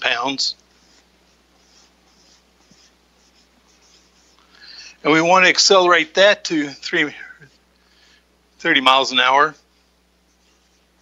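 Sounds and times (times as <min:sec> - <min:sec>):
marker writing on a whiteboard: 0:00.7 - 0:04.4, 0:10.3 - 0:11.0.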